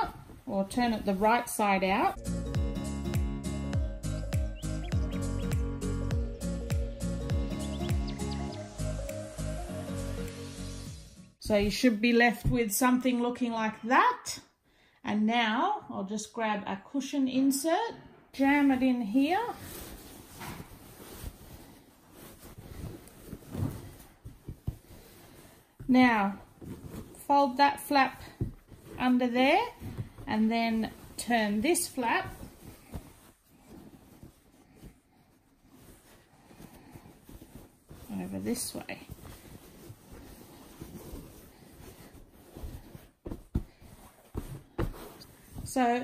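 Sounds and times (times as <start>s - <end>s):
cotton fabric rustling: 0.0s - 2.2s, 11.4s - 13.8s, 18.4s - 46.0s.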